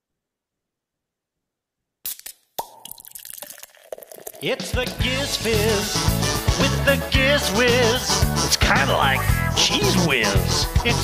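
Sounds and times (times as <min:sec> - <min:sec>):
show intro music and effects: 0:04.7 - 0:11.0.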